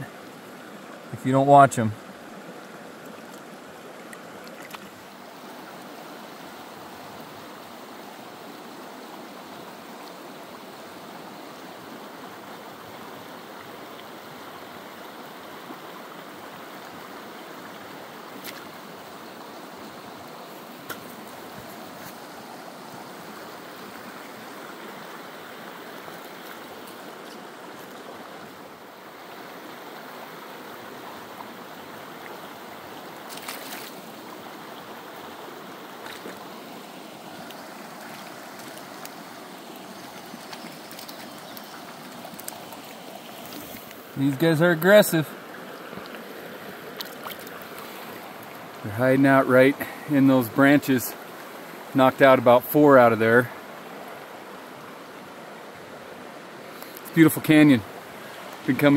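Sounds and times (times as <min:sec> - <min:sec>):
creek water running over rocks: 0:00.0 - 0:58.9
faint clicks: 0:40.2 - 0:44.0, 0:56.8 - 0:57.1.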